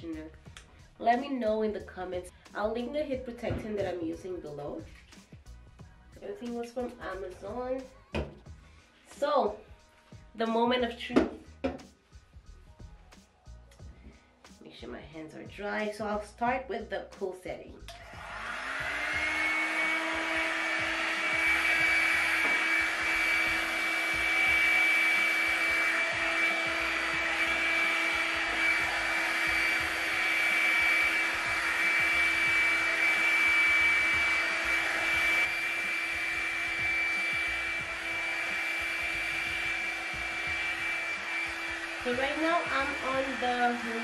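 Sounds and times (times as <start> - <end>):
hair dryer brush whining: 17.9 - 44.0.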